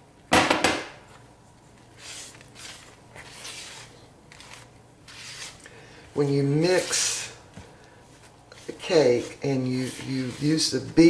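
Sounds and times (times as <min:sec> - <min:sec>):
spatula stirring thick batter: 0:02.0 - 0:11.0.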